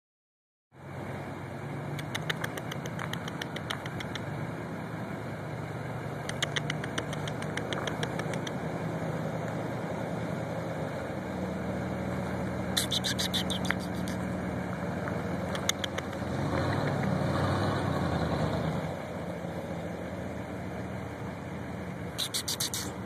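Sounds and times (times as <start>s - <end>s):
car engine idling: 0.8s - 23.0s
sharp clicks: 2.0s - 4.3s, 6.2s - 8.6s, 12.8s - 14.2s, 15.5s - 17.2s, 22.2s - 23.0s.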